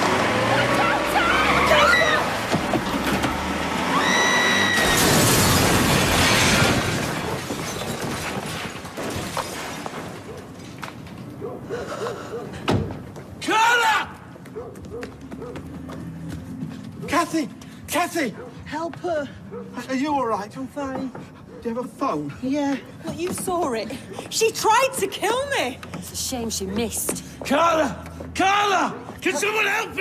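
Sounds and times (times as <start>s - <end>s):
car crash impact: 2.4s - 10.8s
hurried footsteps on cobbles: 14.1s - 19.8s, 20.5s - 29.7s.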